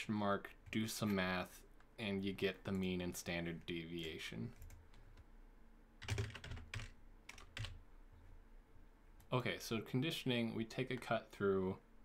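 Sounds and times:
computer keyboard typing: 4.0 - 5.2, 6.0 - 7.8.

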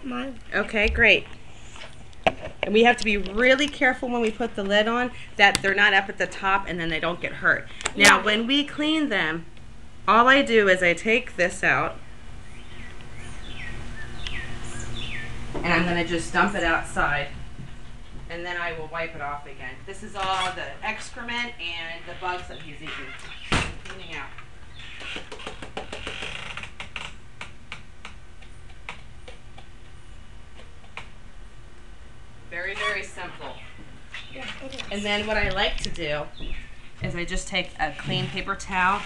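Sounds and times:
low background rumble: 0.0 - 25.0
bird chirping: 12.0 - 15.4.

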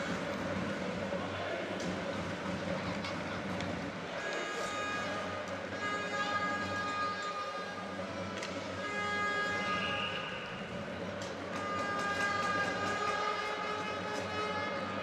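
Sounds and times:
crowd noise: 0.0 - 15.0
arena horn blasts: 4.1 - 15.0
sharp clicks from rink: 11.2 - 14.5.

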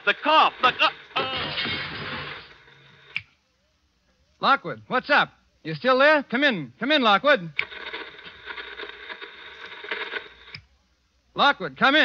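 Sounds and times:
radio static hiss: 0.0 - 12.0.

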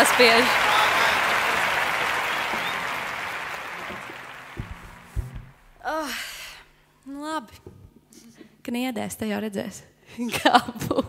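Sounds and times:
applause: 0.0 - 5.5
low knocks: 3.8 - 6.6.

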